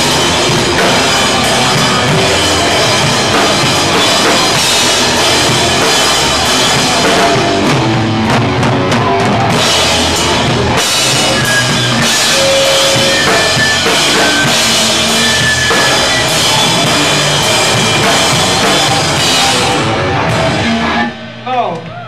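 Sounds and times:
drum kit and cymbals: 0.0 - 21.8
guitar and bass: 0.0 - 22.0.

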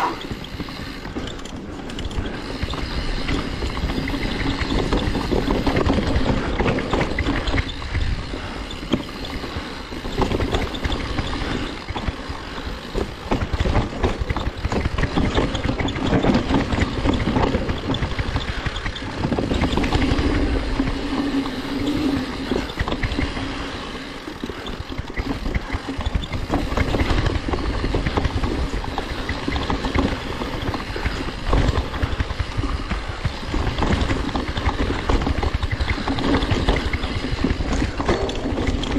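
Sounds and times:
bike rattling and knocking: 0.0 - 38.9
tyres rumbling over dirt: 0.0 - 38.9.

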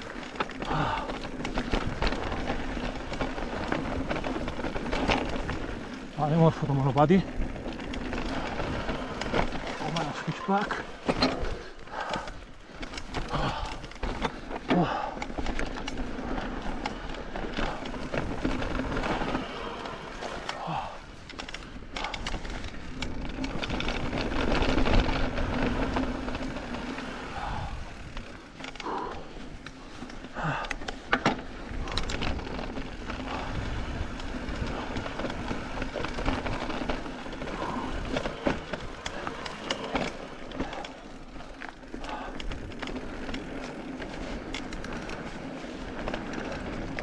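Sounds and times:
bike rattling and knocking: 0.0 - 47.0
bike tyre noise on dirt trail: 0.0 - 47.0.

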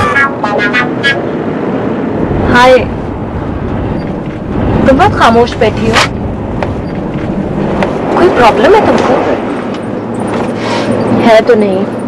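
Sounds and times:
bus engine and road noise: 0.0 - 12.0
voices: 4.1 - 12.0.

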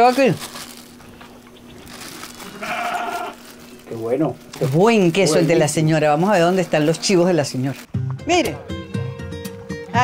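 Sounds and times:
goat bleating: 2.4 - 3.4.

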